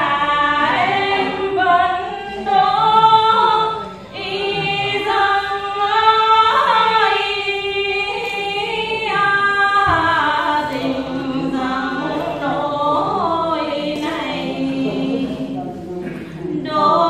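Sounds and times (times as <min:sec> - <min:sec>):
women singing unaccompanied: 0:00.0 - 0:17.0.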